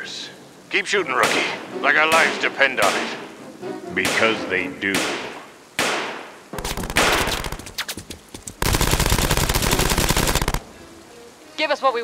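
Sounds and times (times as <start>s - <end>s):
single gunshots: 1.2s - 3.2s, 4.0s - 7.9s
rapid automatic gunfire: 6.6s - 8.0s, 8.6s - 10.6s.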